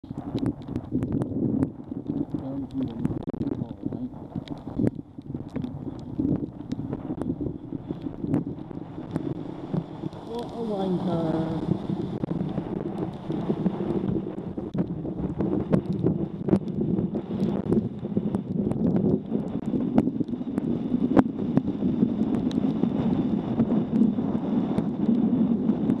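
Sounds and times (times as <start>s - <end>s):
sharp ticks and knocks: 0.0s - 8.4s
wind buffeting microphone: 0.0s - 26.0s.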